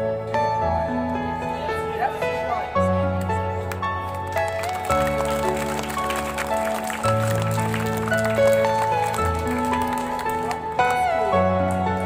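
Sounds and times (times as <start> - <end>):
slow gentle music: 0.0 - 12.0.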